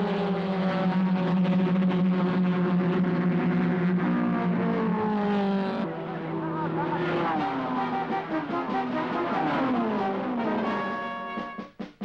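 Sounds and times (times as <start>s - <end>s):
racing car engines: 0.0s - 11.6s
orchestral music with brass: 7.8s - 12.0s.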